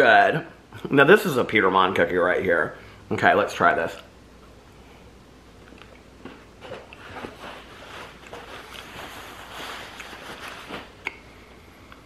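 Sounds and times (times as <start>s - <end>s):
man chewing with wet mouth smacks: 5.6s - 6.3s.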